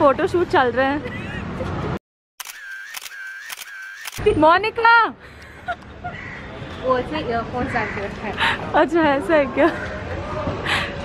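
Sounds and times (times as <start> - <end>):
camera shutter clicks: 2.4 - 4.2.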